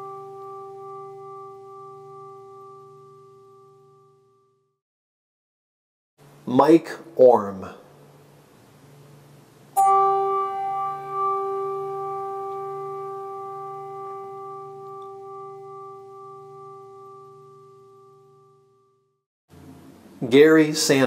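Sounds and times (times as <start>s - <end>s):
bell ringing: 0.0s - 4.2s, 9.8s - 18.6s.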